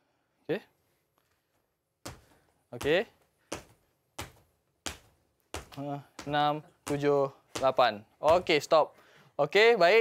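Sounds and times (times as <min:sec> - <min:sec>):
feet landing on wooden floor: 0:02.0 - 0:08.7.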